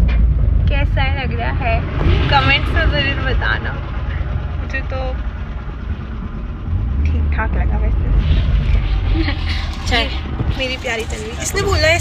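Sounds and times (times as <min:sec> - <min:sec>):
car engine rumble: 0:00.0 - 0:12.0
road noise inside car: 0:00.0 - 0:12.0.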